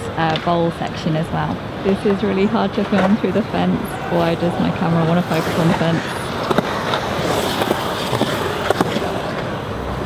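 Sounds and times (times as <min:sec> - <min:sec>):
skateboard wheels rolling on concrete: 0:00.0 - 0:10.0
skateboard clacks: 0:01.5 - 0:03.6, 0:05.0 - 0:10.0.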